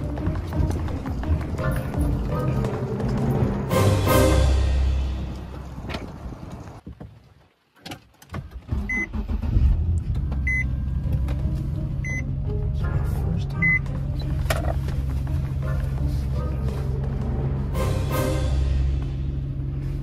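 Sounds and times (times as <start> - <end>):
background music: 0.0 - 6.8, 8.9 - 20.0.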